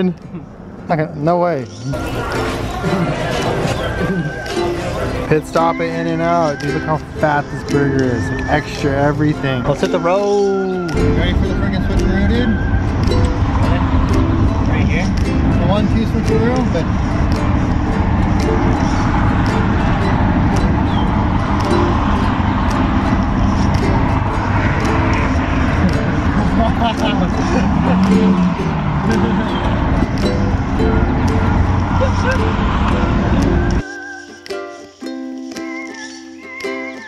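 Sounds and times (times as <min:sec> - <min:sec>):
road and engine noise: 0:00.0 - 0:37.0
background music: 0:01.9 - 0:37.0.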